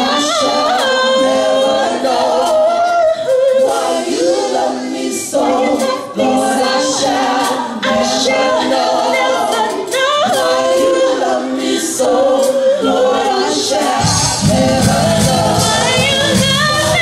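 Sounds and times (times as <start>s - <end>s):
women singing in harmony: 0.0s - 17.0s.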